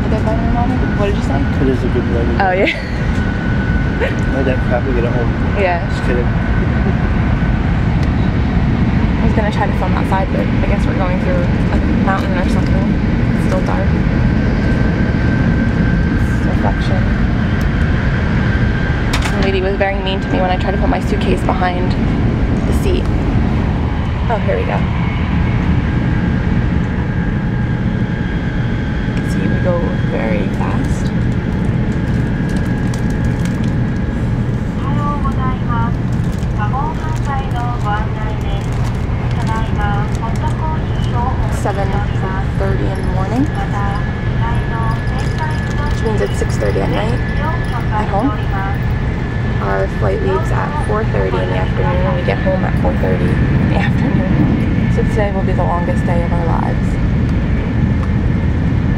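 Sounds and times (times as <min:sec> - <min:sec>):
voices: 0:00.0 - 0:25.0, 0:29.1 - 0:31.3, 0:34.4 - 0:57.0
thin steady whine: 0:00.0 - 0:58.9
train rumbling in a tunnel: 0:00.0 - 0:58.9.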